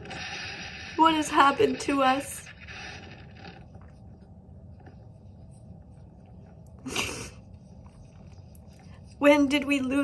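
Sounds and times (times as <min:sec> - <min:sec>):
faint low rumble: 0:00.0 - 0:10.0.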